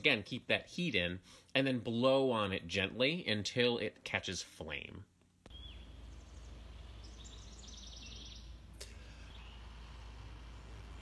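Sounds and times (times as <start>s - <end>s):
small birds chirping and trilling: 5.5s - 11.0s.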